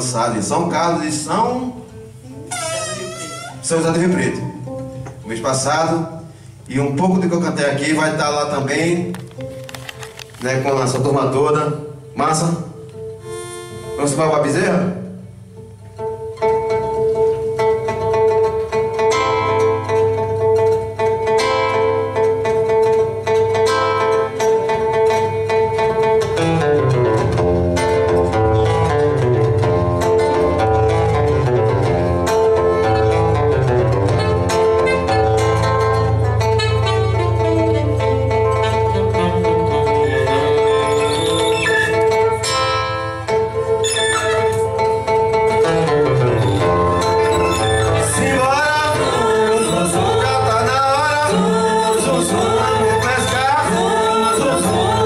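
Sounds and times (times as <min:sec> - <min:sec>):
acoustic guitar melody: 0:00.0 - 0:55.0
held drone note: 0:13.2 - 0:14.1.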